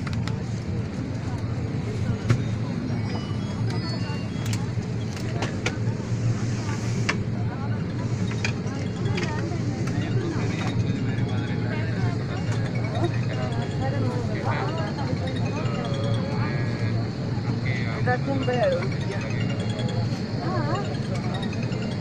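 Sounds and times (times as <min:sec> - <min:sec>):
airliner cabin hum: 0:00.0 - 0:22.0
passengers talking: 0:00.0 - 0:22.0.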